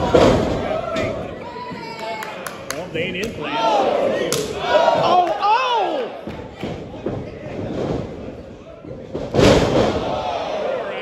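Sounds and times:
crowd shouting: 3.4s - 6.3s, 9.8s - 11.0s.

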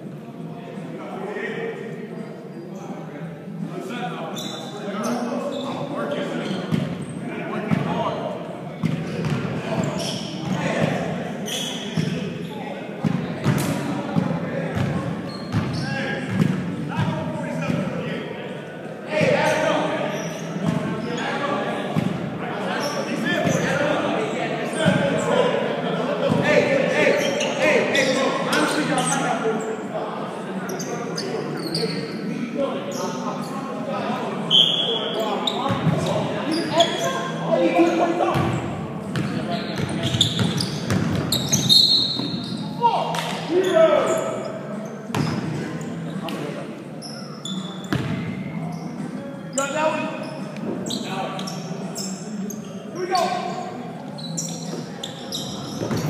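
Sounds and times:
high shoe squeaks: 4.3s - 7.2s, 9.1s - 10.8s, 11.4s - 12.7s, 15.2s - 16.4s, 19.4s - 21.5s, 30.7s - 32.2s, 34.5s - 38.2s, 39.2s - 45.5s, 47.0s - 48.1s, 48.7s - 56.0s.

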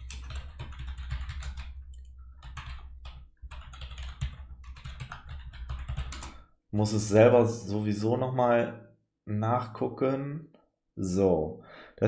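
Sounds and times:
computer keyboard typing: 0.0s - 6.4s.

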